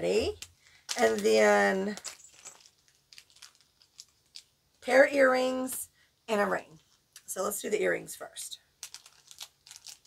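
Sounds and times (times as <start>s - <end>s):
packaging rustling and clicking: 0.4s - 4.5s, 8.8s - 10.0s.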